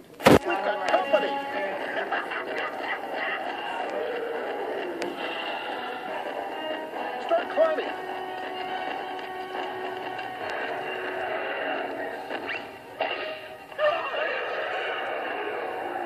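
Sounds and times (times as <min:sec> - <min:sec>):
cartoon music: 0:00.4 - 0:15.0.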